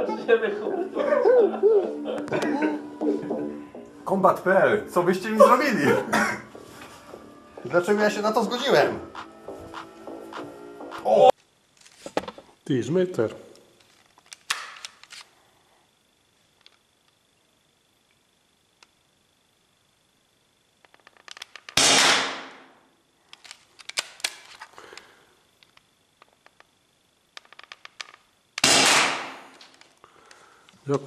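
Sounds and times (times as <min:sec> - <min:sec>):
paintball marker shots echoing: 0:21.7 - 0:22.6, 0:28.6 - 0:29.6.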